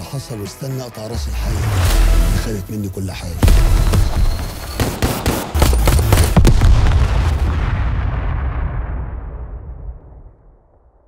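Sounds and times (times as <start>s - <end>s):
pistol gunshots: 3.4s - 6.7s.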